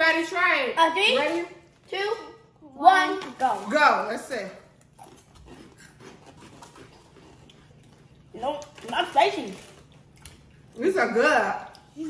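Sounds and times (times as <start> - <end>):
people chewing crunchy snacks: 4.7 - 10.9.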